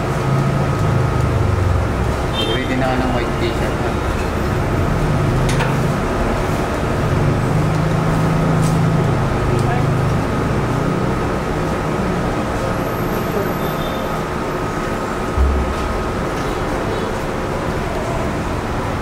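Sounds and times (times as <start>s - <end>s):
high machine whine: 14.2s - 19.0s
low machine hum: 15.0s - 19.0s.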